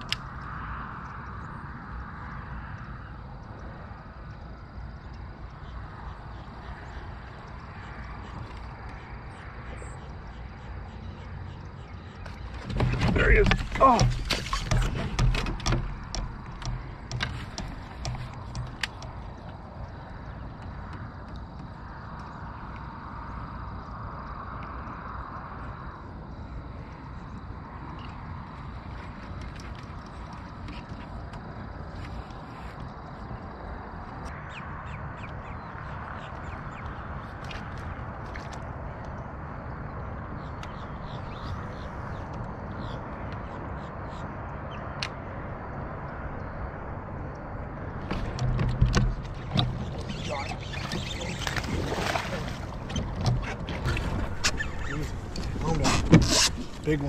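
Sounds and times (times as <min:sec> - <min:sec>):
birds calling: 0:05.4 - 0:21.0, 0:40.3 - 0:44.9, 0:47.9 - 0:57.0
knocks and clicks: 0:12.2 - 0:19.5, 0:48.0 - 0:51.7.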